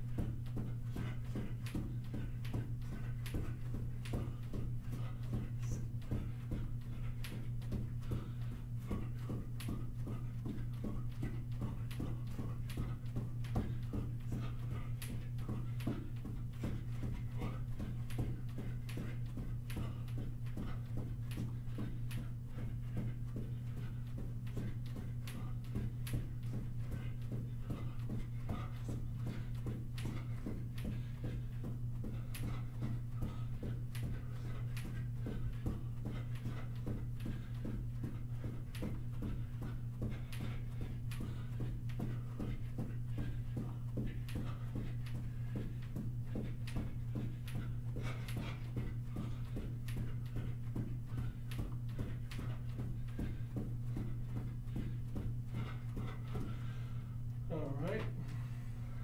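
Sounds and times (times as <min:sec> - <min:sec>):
footfalls jogging on carpet: 0:00.0 - 0:59.0
steady low hum: 0:00.0 - 0:59.0.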